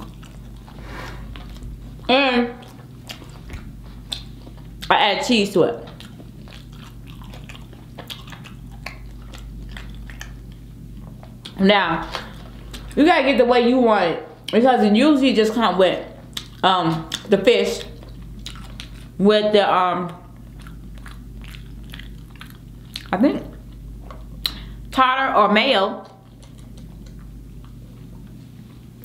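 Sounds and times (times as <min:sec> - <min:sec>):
close chewing with wet clicks: 0:00.0 - 0:05.0, 0:05.7 - 0:11.6, 0:16.2 - 0:19.2, 0:20.0 - 0:24.8, 0:26.0 - 0:28.4
low electrical hum: 0:00.0 - 0:29.0.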